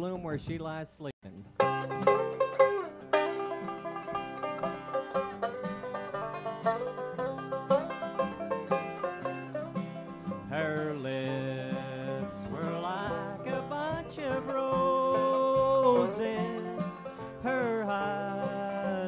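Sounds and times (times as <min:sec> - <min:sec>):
acoustic guitar: 0:01.4 - 0:19.0
banjo picking: 0:01.4 - 0:19.0.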